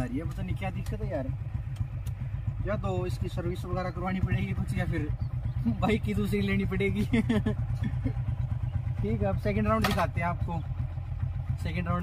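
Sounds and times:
motorcycles idling: 0.0s - 12.0s.

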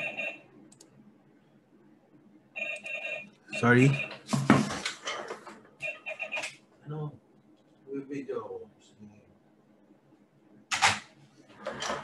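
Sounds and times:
computer mouse clicks: 0.7s - 0.9s.

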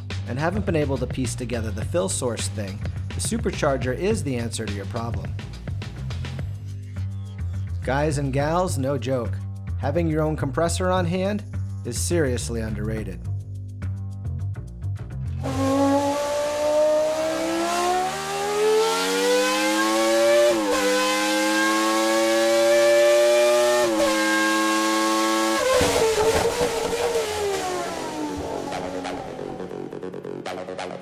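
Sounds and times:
car engine accelerating: 15.4s - 31.0s.

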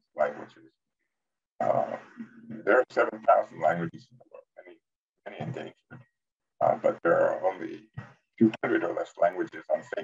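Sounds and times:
man talking: 0.2s - 0.6s, 1.6s - 4.7s, 5.3s - 6.0s, 6.6s - 10.0s.

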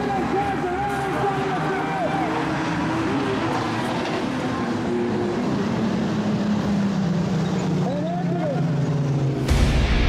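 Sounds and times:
racing car engines: 0.0s - 10.0s.

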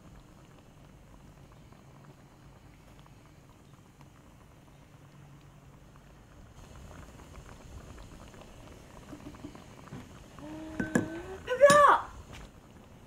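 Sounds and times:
pot simmering with bubbling hiss: 0.0s - 13.0s.

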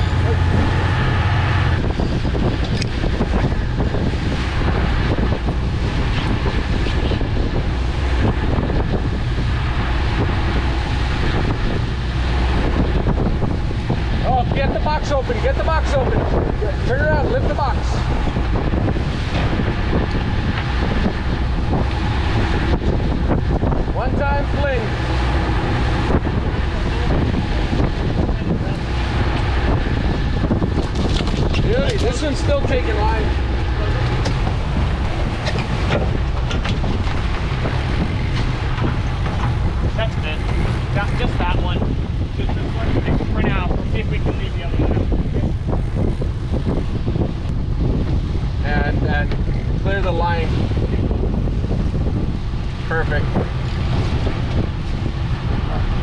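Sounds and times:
boat engine running: 0.0s - 56.0s
wind on microphone: 0.0s - 56.0s.

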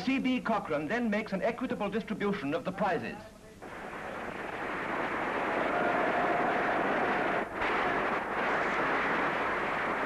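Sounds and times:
audience applauding: 3.6s - 10.0s.

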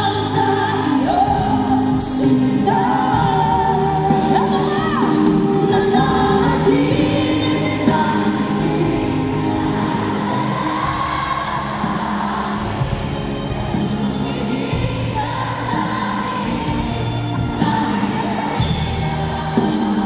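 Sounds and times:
drums: 0.0s - 20.0s
women singing power ballad: 0.0s - 20.0s.

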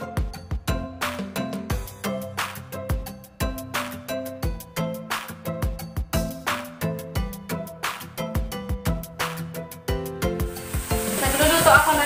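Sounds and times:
background music with steady beat: 0.0s - 12.0s
food sizzling in a pan: 10.4s - 12.0s.

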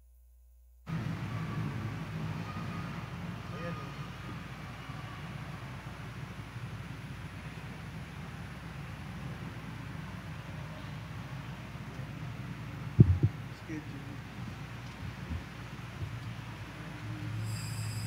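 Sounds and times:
low room rumble: 0.0s - 17.7s
faint indistinct voices: 0.9s - 18.0s.

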